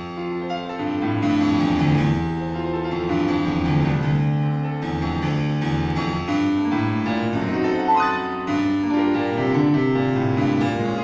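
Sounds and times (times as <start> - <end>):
solo blues piano: 0.0 - 11.0.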